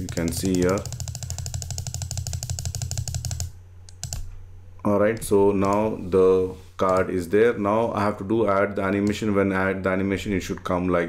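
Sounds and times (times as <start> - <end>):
computer mouse clicking: 0.0 - 4.4, 5.2 - 6.0, 6.8 - 7.1.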